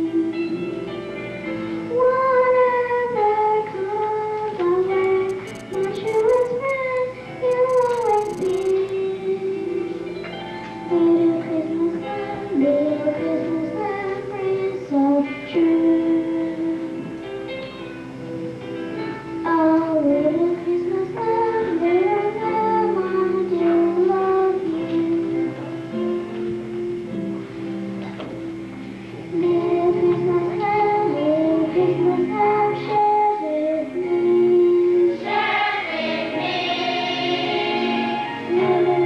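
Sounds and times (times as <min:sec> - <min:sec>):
girl singing into a microphone: 0:01.8 - 0:09.9, 0:10.9 - 0:17.3, 0:19.4 - 0:25.8, 0:29.3 - 0:39.0
choir singing with accompaniment: 0:35.0 - 0:39.0.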